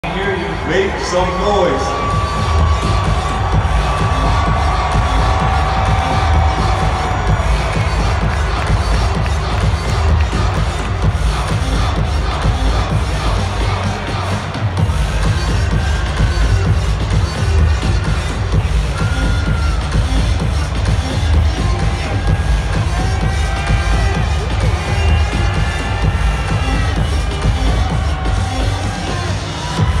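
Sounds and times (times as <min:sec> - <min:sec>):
crowd cheering: 0:00.0 - 0:30.0
music with pulsing bass beat: 0:00.0 - 0:30.0.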